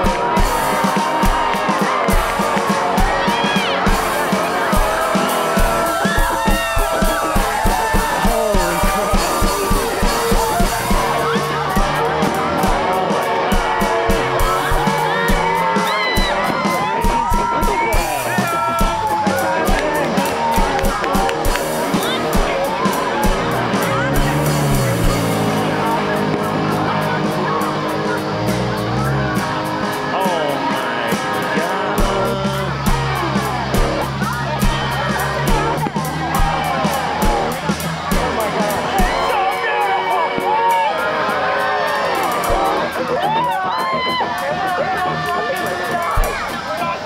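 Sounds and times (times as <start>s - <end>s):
kick drum beat: 0.0s - 25.5s, 32.0s - 39.3s
low bass line: 0.0s - 39.3s.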